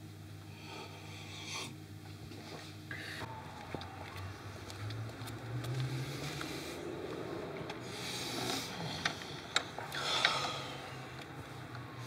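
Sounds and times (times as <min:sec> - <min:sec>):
low steady outdoor hum: 0:00.0 - 0:12.0.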